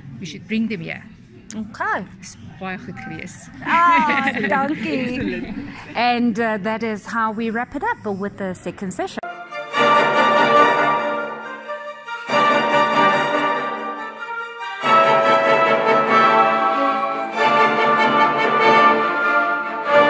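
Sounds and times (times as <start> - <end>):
symphony orchestra playing: 9.3 - 20.0.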